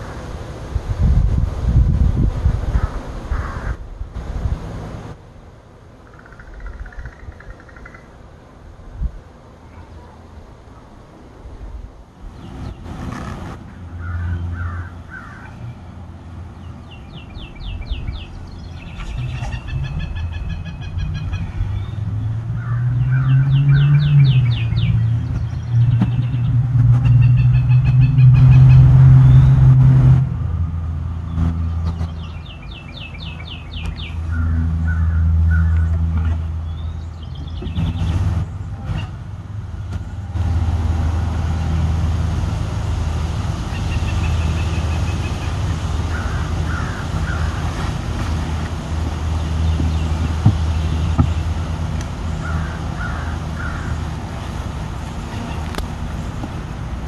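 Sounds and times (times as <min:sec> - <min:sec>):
continuous low drone: 0:00.0 - 0:57.0
birds chirping: 0:05.9 - 0:08.3, 0:12.3 - 0:29.8, 0:31.1 - 0:42.5, 0:43.4 - 0:56.7
sharp knocks: 0:49.8 - 0:51.4.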